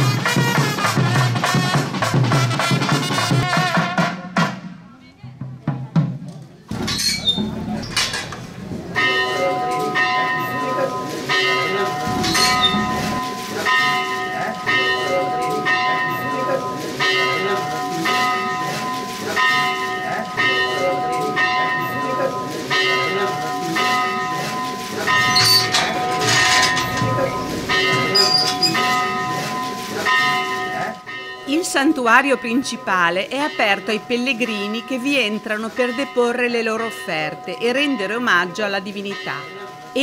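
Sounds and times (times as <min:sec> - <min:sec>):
temple bell ringing: 0:07.6 - 0:40.0.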